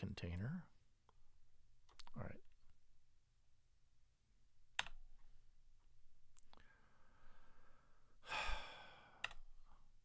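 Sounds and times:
man sighing: 0:08.2 - 0:09.4.

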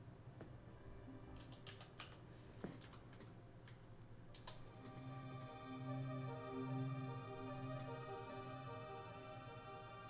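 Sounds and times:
computer keyboard keystrokes: 0:01.4 - 0:02.2, 0:02.8 - 0:03.8.

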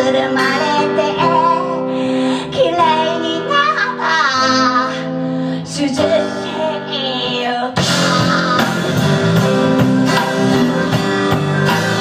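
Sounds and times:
woman singing: 0:00.0 - 0:09.1
bass: 0:00.0 - 0:12.0
keyboard chords: 0:00.0 - 0:12.0
acoustic guitar chords: 0:06.0 - 0:12.0.

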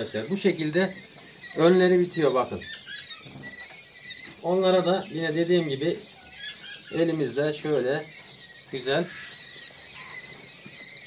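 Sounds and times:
chicks peeping: 0:00.0 - 0:11.0.

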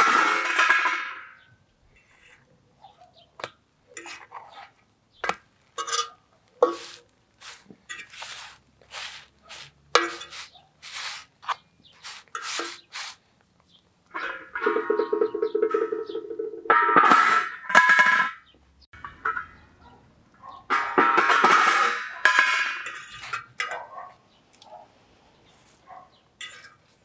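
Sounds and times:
metal lid scraping and clanking: 0:04.0 - 0:04.8, 0:05.8 - 0:13.2, 0:20.7 - 0:23.9, 0:26.4 - 0:27.0.

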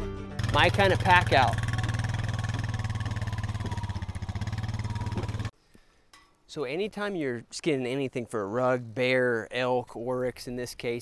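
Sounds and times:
quad engine running: 0:00.4 - 0:05.5.

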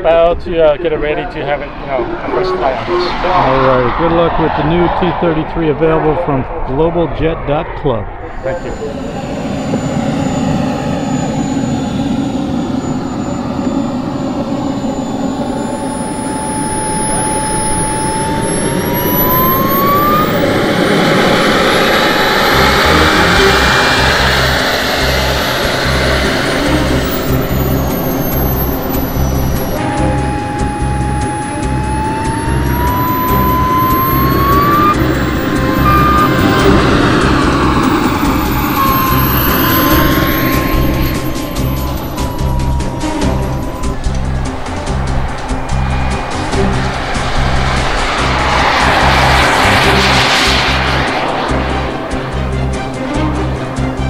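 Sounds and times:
jet turbine whining: 0:00.0 - 0:54.0
high whistle sweeping: 0:01.0 - 0:06.9, 0:08.1 - 0:54.0.

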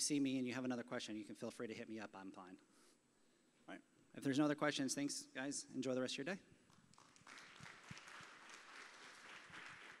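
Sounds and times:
faint audience applause: 0:06.7 - 0:10.0.

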